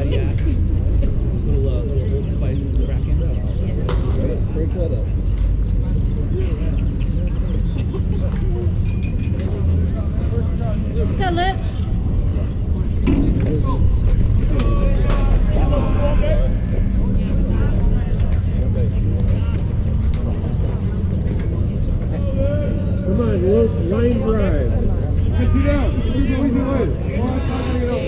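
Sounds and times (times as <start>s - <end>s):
distant voices calling and chattering: 0.0s - 28.0s
steady low rumble: 0.0s - 28.0s.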